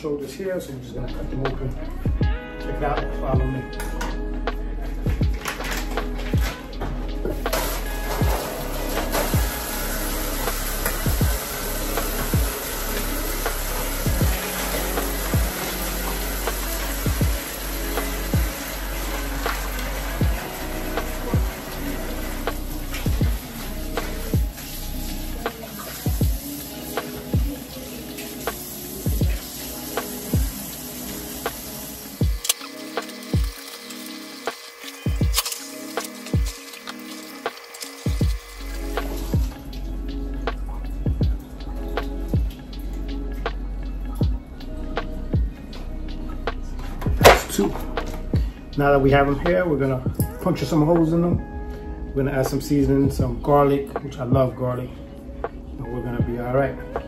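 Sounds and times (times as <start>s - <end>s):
background music with steady beat: 0.0s - 57.0s
tap water running into sink: 7.3s - 24.8s, 25.4s - 39.6s.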